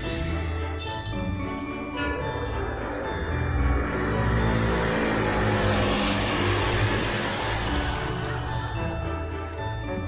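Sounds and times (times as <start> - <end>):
background music: 0.0 - 10.0
motor vehicle passing: 2.1 - 9.0.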